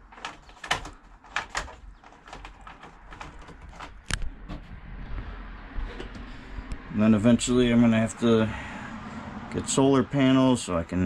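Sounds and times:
electrical wires clicking and rustling: 0:00.0 - 0:06.8.

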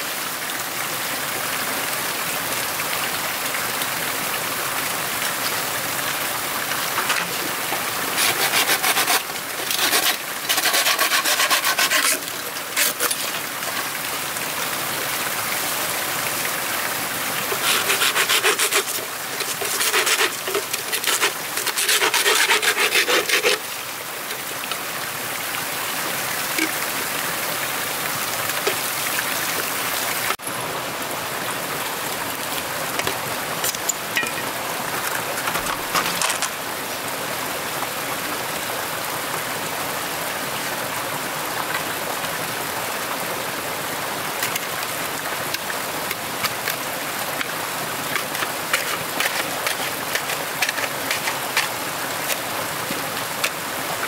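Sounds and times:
rasping strokes on wood: 0:08.1 - 0:13.3, 0:17.5 - 0:23.6, 0:48.4 - 0:51.7.

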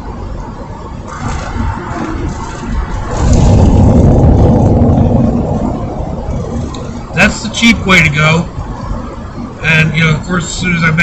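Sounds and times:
vehicle passing rumble: 0:01.0 - 0:09.7.

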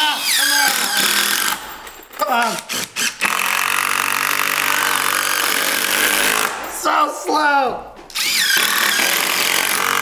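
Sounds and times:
impact drivers hammering screws: 0:02.4 - 0:06.6, 0:08.1 - 0:10.0.

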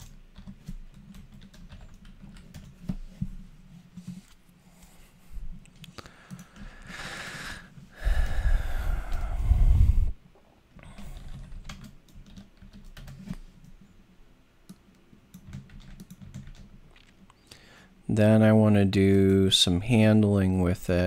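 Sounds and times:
typing on computer keyboard: 0:00.0 - 0:03.0, 0:05.8 - 0:06.6, 0:10.8 - 0:13.8, 0:14.7 - 0:17.2
loud breathy rush of noise: 0:06.0 - 0:10.2.

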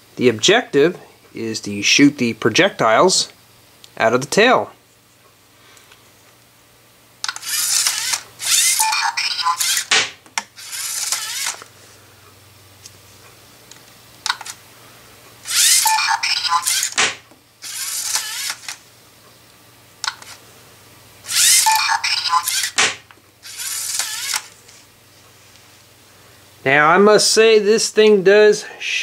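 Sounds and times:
servo motors whirring: 0:07.3 - 0:09.9, 0:10.6 - 0:11.7, 0:15.5 - 0:17.0, 0:17.6 - 0:18.8, 0:21.3 - 0:22.8, 0:23.4 - 0:24.6.

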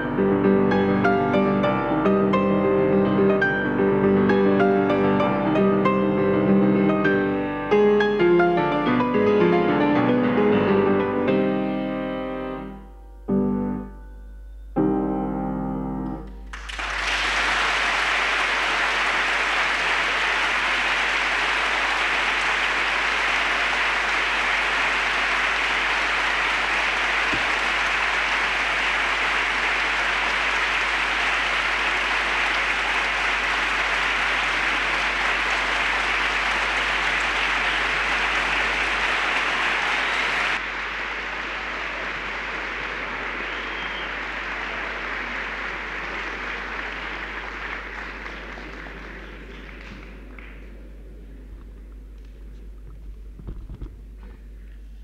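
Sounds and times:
audience applauding: 0:00.0 - 0:07.2, 0:16.5 - 0:52.3.

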